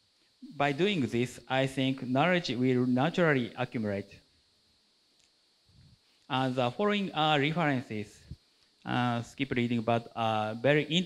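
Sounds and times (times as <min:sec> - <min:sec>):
faint sharp click: 0:05.1 - 0:05.4.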